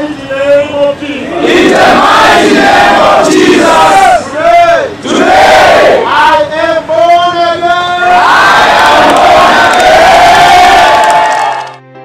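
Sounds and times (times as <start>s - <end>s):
crowd shouting in unison: 1.3s - 6.2s, 8.1s - 11.8s.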